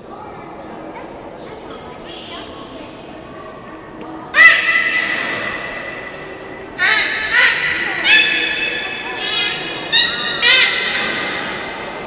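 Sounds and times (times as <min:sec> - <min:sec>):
beluga whale calling: 0:06.8 - 0:12.0.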